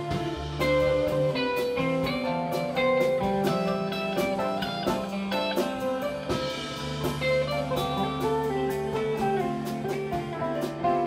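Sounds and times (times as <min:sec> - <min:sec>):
bass: 0:00.0 - 0:11.0
drums and cymbals: 0:00.0 - 0:11.0
electric guitar melody: 0:00.0 - 0:11.0
keyboard: 0:00.0 - 0:11.0.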